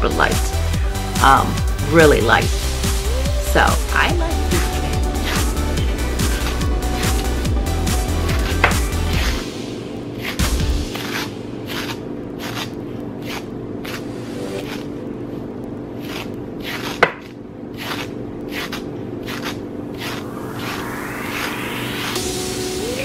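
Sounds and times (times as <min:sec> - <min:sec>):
brush raking through hair: 0:02.6 - 0:22.4.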